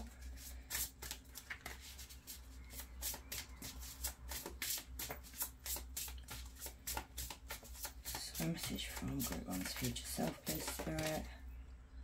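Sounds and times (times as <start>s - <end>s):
cards shuffled by hand: 0.0s - 11.3s.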